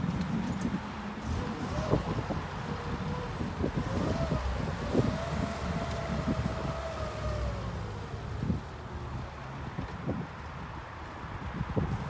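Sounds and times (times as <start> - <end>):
engine running unevenly: 0.0 - 10.5.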